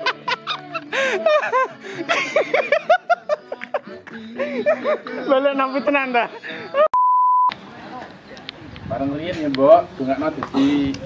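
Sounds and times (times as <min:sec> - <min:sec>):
censor bleep: 0:07.0 - 0:07.5
man talking: 0:09.0 - 0:11.0.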